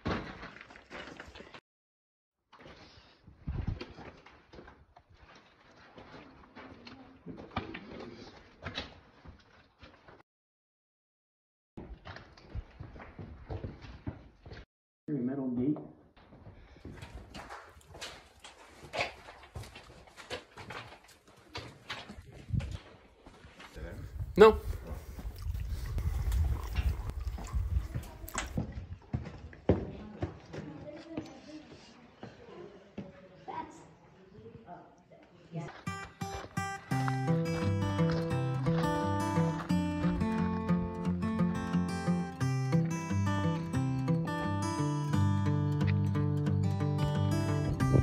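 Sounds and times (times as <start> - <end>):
footsteps on rocks and stones: 0.0 - 1.6, 16.4 - 29.4.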